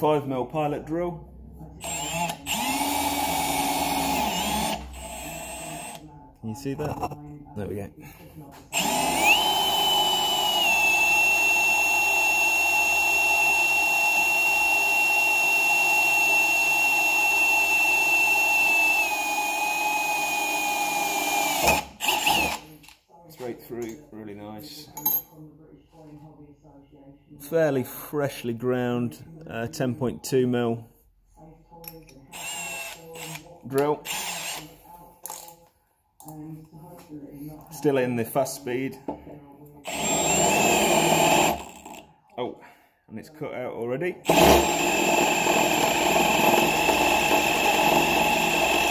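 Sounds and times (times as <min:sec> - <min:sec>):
power drill whining through steel: 0:01.8 - 0:06.0, 0:08.7 - 0:22.7, 0:32.3 - 0:34.7, 0:39.8 - 0:42.0, 0:44.2 - 0:48.9
drill chuck ratchet clicks: 0:20.3 - 0:22.6.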